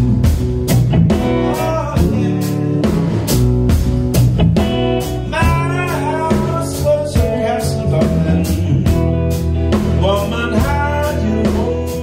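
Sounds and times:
drum and cymbal hits: 0:00.0 - 0:12.0
electric blues band playing: 0:00.0 - 0:12.0.

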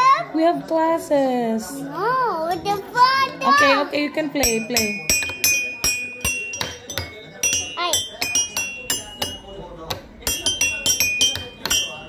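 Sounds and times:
toy xylophone struck with mallets: 0:04.4 - 0:12.0.

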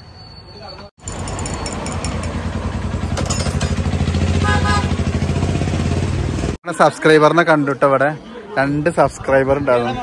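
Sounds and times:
vehicle engine running: 0:01.0 - 0:06.6.

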